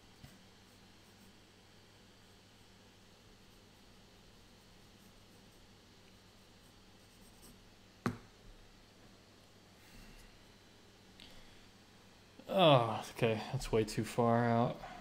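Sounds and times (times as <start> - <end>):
pencil scratching on paper: 0.2 - 1.5, 3.4 - 7.6.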